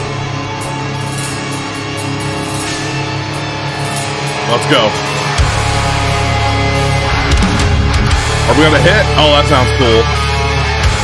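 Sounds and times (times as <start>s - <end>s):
slow heavy metal song: 0.0s - 11.0s.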